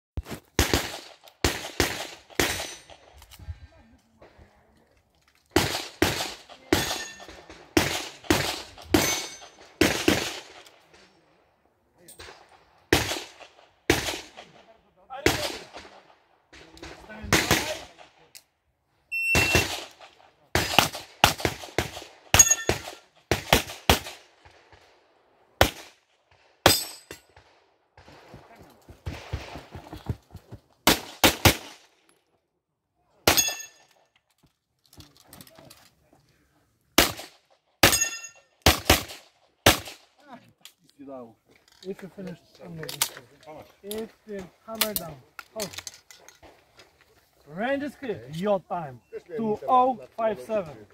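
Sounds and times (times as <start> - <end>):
pistol shots: 0.5 - 3.0, 5.5 - 10.7, 12.2 - 14.5, 15.2 - 18.0, 19.3 - 24.8, 25.6 - 26.0, 30.8 - 31.8, 37.0 - 40.0
metallic ping of steel targets: 22.4 - 22.8, 37.8 - 38.5.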